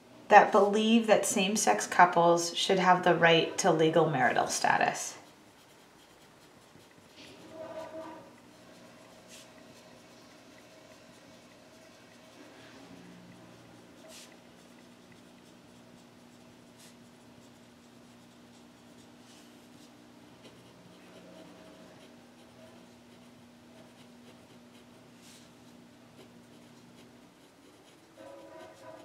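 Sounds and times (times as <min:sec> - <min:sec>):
low steady hum: 0:00.0 - 0:29.0
pencil scratching on paper: 0:02.7 - 0:29.0.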